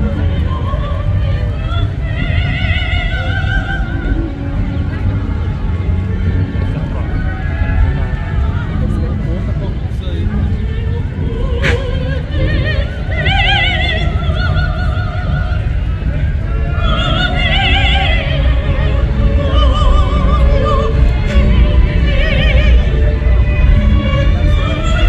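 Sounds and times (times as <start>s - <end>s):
woman singing operatically: 0.0s - 5.2s, 10.5s - 25.0s
crowd and street noise: 0.0s - 25.0s.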